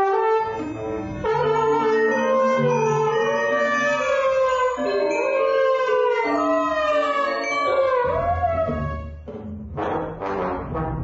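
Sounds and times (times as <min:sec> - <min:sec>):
trombone sliding notes: 0:00.0 - 0:09.2, 0:09.8 - 0:11.0.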